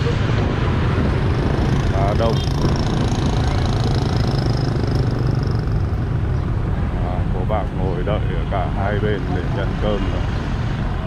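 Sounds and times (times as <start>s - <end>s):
motorbike engines running: 0.0s - 11.0s
street traffic hum: 0.0s - 11.0s.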